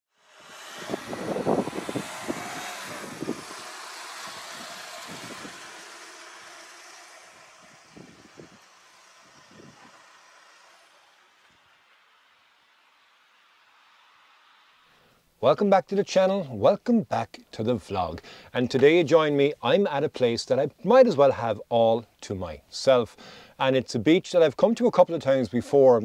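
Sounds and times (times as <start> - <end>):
car running: 0.1 - 15.2.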